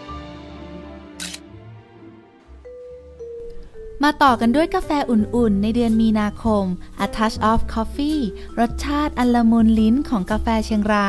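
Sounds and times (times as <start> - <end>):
soft background music: 0.0 - 11.0
camera shutter click: 1.2 - 1.4.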